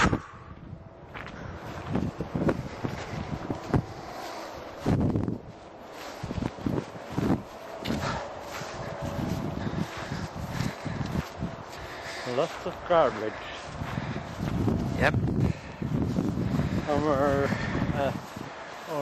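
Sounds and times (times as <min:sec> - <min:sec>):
footsteps: 0:00.0 - 0:19.0.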